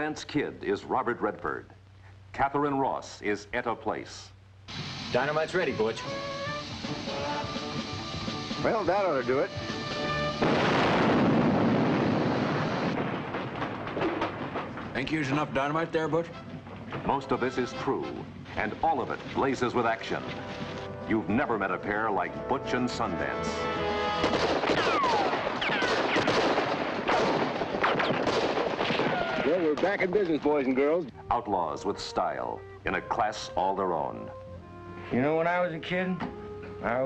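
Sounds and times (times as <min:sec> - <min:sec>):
explosion rumble: 0:10.2 - 0:15.1
falling wooden debris clatter: 0:12.8 - 0:15.1
rifle and pistol gunshots: 0:24.2 - 0:30.0.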